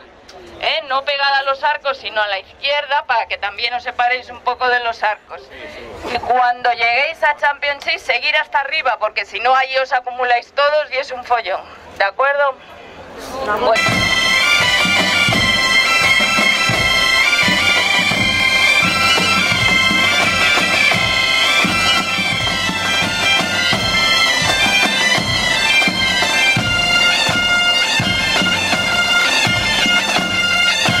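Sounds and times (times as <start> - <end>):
bagpipe melody over drone: 13.8 - 31.0.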